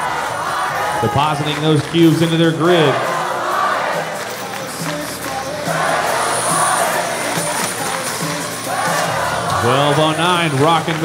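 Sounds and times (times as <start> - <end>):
crowd noise echoing: 0.0 - 11.0
music over sound system: 0.0 - 11.0.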